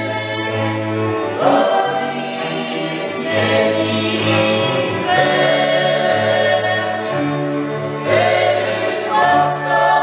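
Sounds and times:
bowed fiddles and bass: 0.0s - 10.0s
voices singing held notes: 0.0s - 10.0s.

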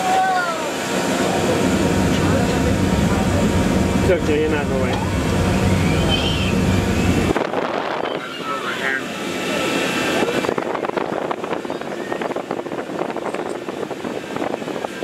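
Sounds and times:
steady low hum: 0.7s - 11.6s.

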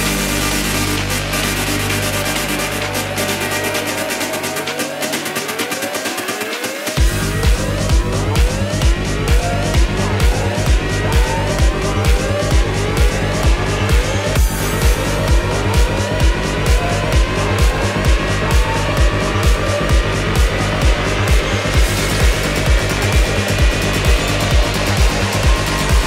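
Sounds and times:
kick-drum beat: 0.0s - 26.0s
synth rising pitch sweeps: 0.0s - 26.0s.

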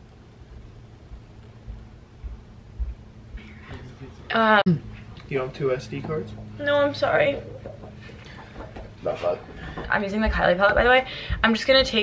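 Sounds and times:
steady low hum: 0.0s - 12.0s
soft dull thumps: 1.1s - 3.9s, 7.2s - 12.0s.

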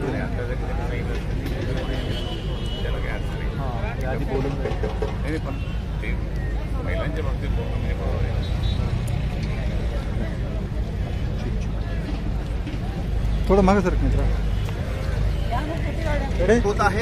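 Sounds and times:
men talking in a crowd: 0.0s - 17.0s.

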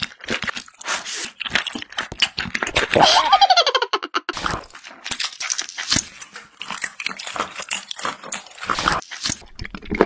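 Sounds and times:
chewing with clicks and snaps: 0.0s - 3.2s, 4.3s - 10.0s.

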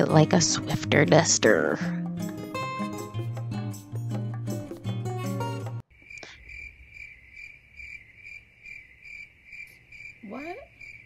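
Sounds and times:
plucked guitar music: 0.0s - 5.8s
crickets chirping: 5.9s - 11.0s.

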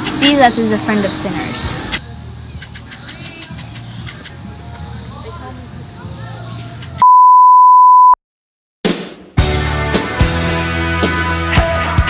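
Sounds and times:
electronic beep: 7.0s - 8.2s.

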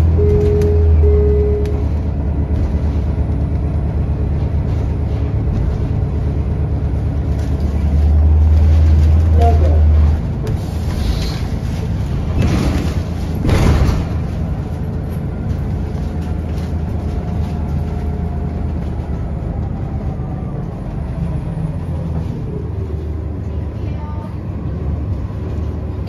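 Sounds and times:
bus engine hum: 0.0s - 26.0s
road noise: 0.0s - 26.0s.

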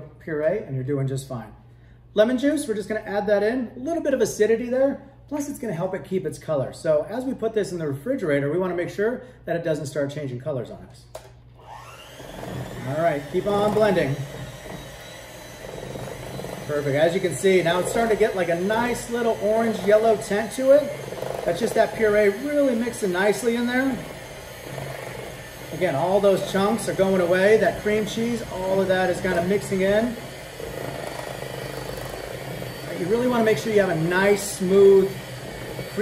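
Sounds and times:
electric hand mixer whirring: 11.6s - 36.0s.

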